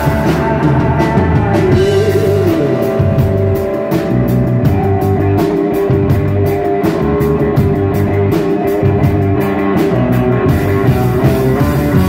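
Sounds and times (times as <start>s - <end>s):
drum-kit beat with cymbals: 0.0s - 12.0s
electric bass line: 0.0s - 12.0s.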